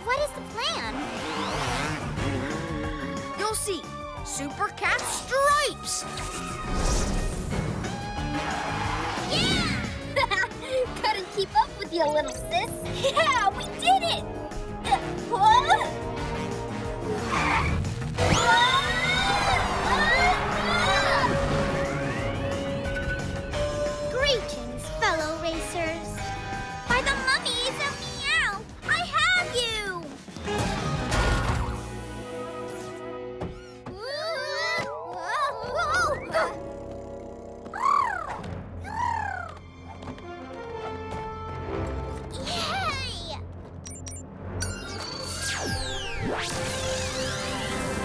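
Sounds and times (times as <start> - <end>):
cartoon background music: 0.0 - 48.0
cartoon characters' high cries: 18.2 - 21.5, 34.0 - 36.6.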